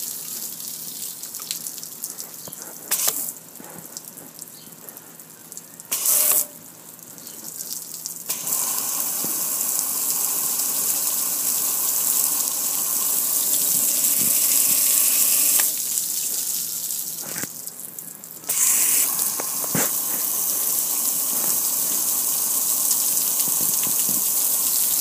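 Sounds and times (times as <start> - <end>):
water splashing on concrete: 0.0 - 4.6, 7.5 - 25.0
hose water spraying on grill: 0.0 - 5.2, 5.9 - 6.6, 8.3 - 17.6, 18.4 - 25.0.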